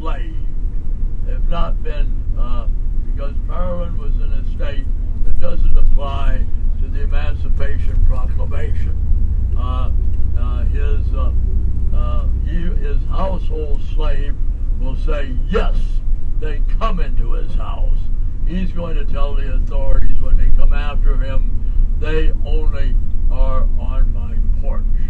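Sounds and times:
vehicle engine rumbling: 0:00.0 - 0:25.0
person speaking: 0:01.3 - 0:08.9, 0:09.6 - 0:11.4, 0:12.0 - 0:25.0.

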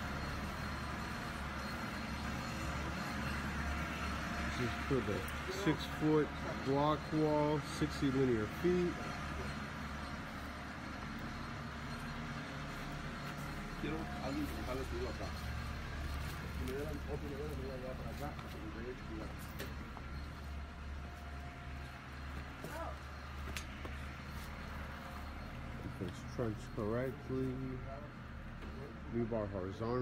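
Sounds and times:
faint voices talking: 0:00.0 - 0:30.0.

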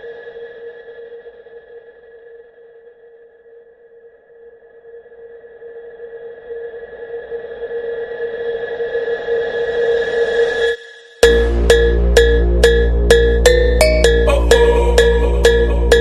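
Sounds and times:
steady ringing tone: 0:11.2 - 0:16.0.

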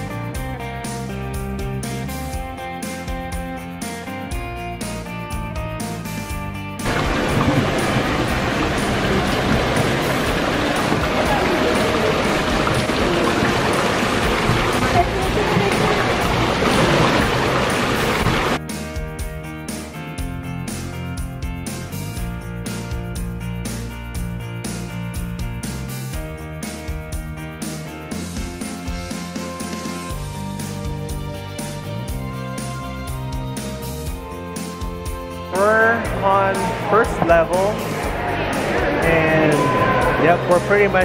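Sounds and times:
light guitar music: 0:00.0 - 0:41.0
waterfall splashing over rocks: 0:06.8 - 0:18.6
people's voices: 0:10.6 - 0:16.9, 0:35.6 - 0:41.0.

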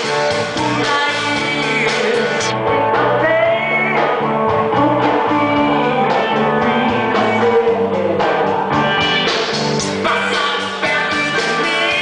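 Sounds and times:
live rock band playing: 0:00.0 - 0:12.0.

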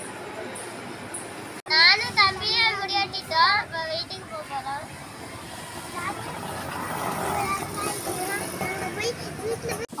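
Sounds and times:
motor vehicle passing: 0:04.0 - 0:09.9.

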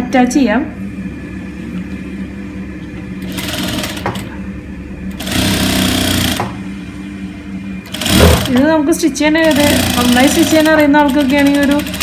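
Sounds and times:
sewing machine hum: 0:03.2 - 0:04.3, 0:05.1 - 0:06.5, 0:07.8 - 0:08.8, 0:09.4 - 0:12.0
sewing machine stitching: 0:07.9 - 0:08.6, 0:09.5 - 0:12.0.

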